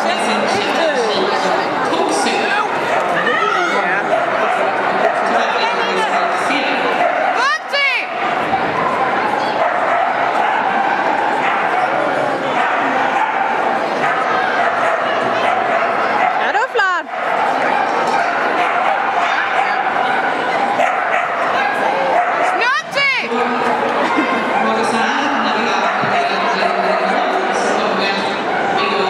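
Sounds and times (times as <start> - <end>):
crowd chatter in a large hall: 0.0 - 29.0
dog barking and yipping: 7.0 - 7.7, 9.5 - 23.2.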